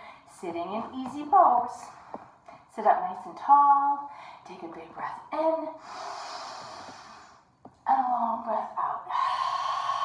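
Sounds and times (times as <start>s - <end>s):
woman's deep in-breath: 5.8s - 7.5s, 9.1s - 10.0s.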